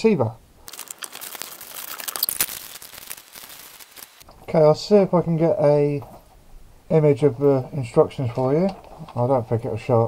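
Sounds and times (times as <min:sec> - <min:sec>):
plastic packaging crinkling: 0:00.6 - 0:04.2.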